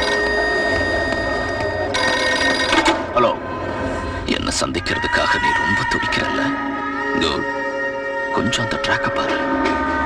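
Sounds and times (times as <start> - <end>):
telephone ringing: 0.0 - 3.1.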